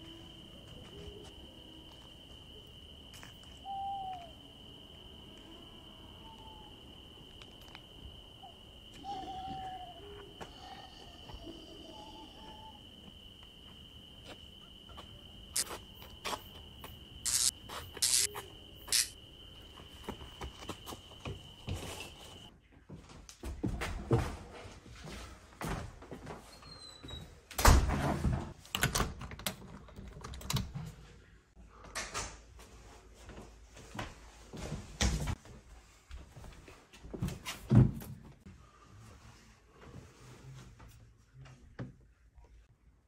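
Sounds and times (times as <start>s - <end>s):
crickets trilling: 0.0s - 22.5s.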